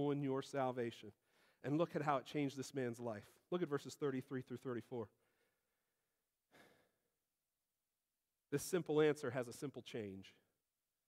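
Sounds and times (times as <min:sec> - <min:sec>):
faint short breath: 0:01.2 - 0:01.6, 0:06.5 - 0:07.0.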